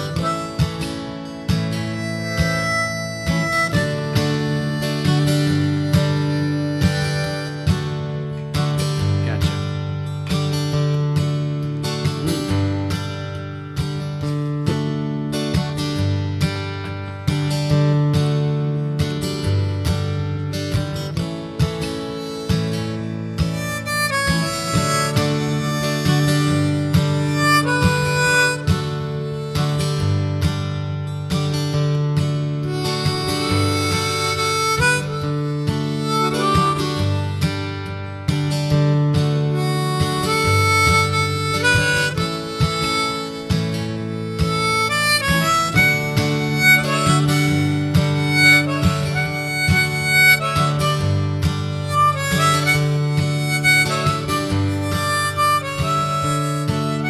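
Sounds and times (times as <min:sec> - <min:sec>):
harmonica solo: 0:00.0 - 0:14.8, 0:17.5 - 0:57.0
acoustic guitar chords: 0:00.0 - 0:57.0.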